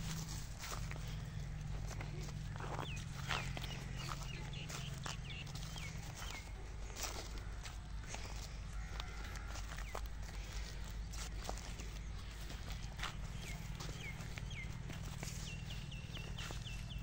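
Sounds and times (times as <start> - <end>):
footsteps crunching on stubble: 0.0 - 17.0
steady low rumble: 0.0 - 17.0
bird chirps: 0.7 - 7.1, 9.7 - 17.0.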